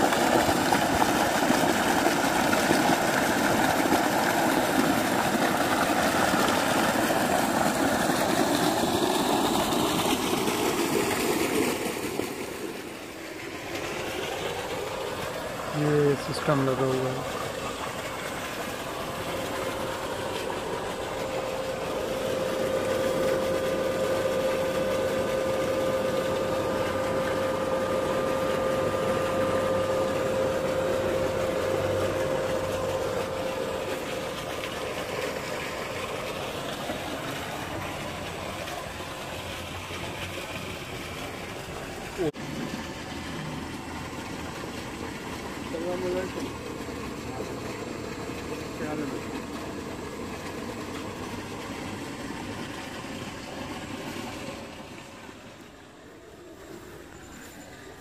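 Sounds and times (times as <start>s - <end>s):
steady whine: 0.0s - 39.2s
pump mechanical hum: 0.0s - 58.0s.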